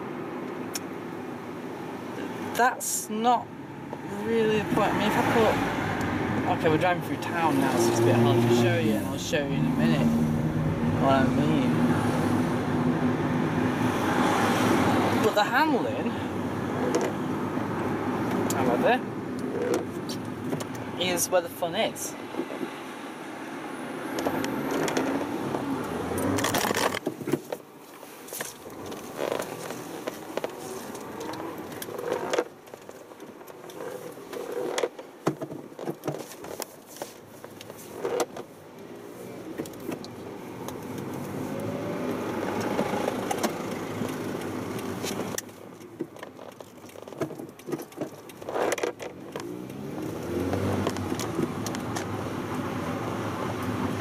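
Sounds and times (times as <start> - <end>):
car engine accelerating: 4.0 - 15.4, 23.4 - 27.0, 39.4 - 45.4, 48.5 - 54.0.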